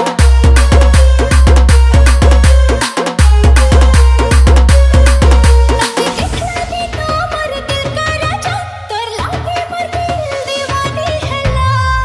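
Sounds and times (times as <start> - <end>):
fast electronic beat: 0.0 - 11.9.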